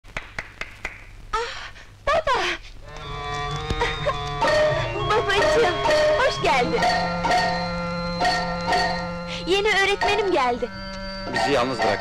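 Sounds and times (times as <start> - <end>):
hand claps: 0.0 - 1.1
film score music: 2.8 - 12.0.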